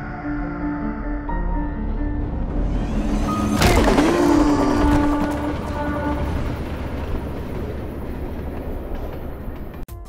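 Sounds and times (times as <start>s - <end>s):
train rumbling along rails: 1.8s - 10.0s.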